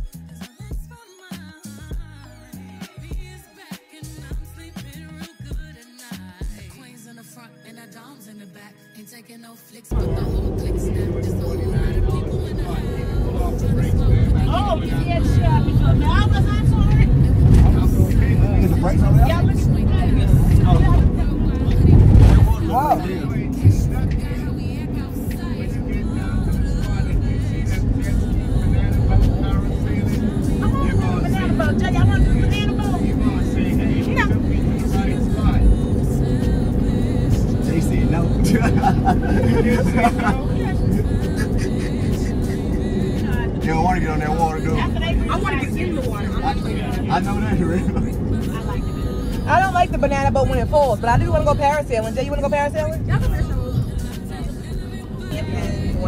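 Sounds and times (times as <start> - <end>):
engine and road rumble: 0.0 - 3.4, 4.0 - 6.7, 9.9 - 56.0
music: 0.0 - 56.0
indistinct voices: 9.9 - 56.0.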